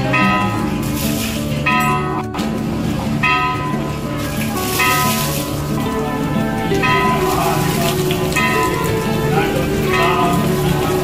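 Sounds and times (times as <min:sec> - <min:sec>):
devotional music: 0:00.0 - 0:11.0
water running into basin: 0:00.0 - 0:11.0
water splashing over stone statue: 0:00.0 - 0:11.0.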